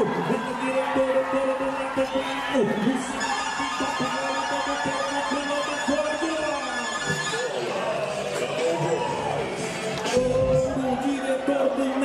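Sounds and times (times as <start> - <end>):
crowd noise: 0.0 - 12.0
voice over loudspeakers: 0.0 - 12.0.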